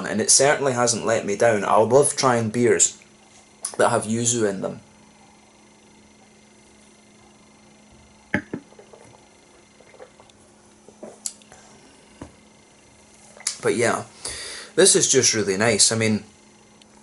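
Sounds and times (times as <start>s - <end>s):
low hum: 1.1s - 14.2s
glass set down on table: 8.3s - 9.1s
sipping from a glass: 8.6s - 11.5s.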